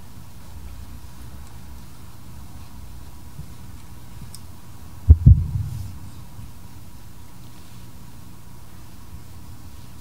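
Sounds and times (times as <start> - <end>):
dull low thumps: 5.1 - 6.6.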